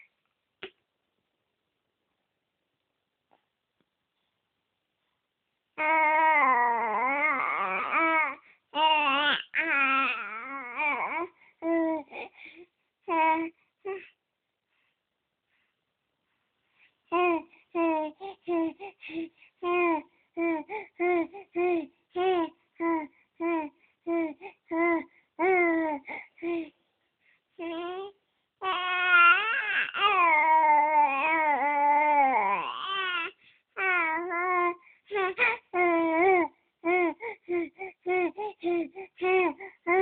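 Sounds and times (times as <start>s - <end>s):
baby cooing and babbling: 5.8s - 12.3s, 13.0s - 14.2s, 17.1s - 26.7s, 27.6s - 40.0s.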